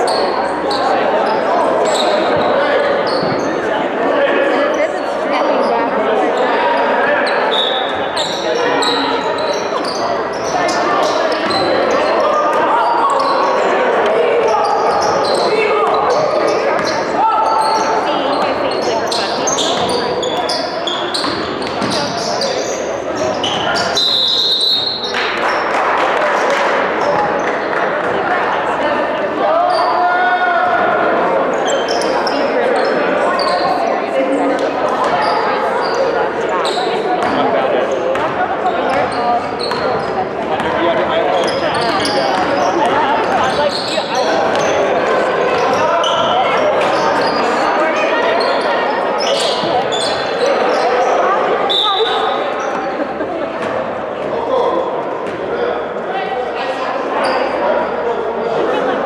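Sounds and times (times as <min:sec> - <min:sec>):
hubbub of echoing voices: 0:00.0 - 0:59.0
basketballs bouncing on hardwood floor: 0:21.2 - 0:22.1.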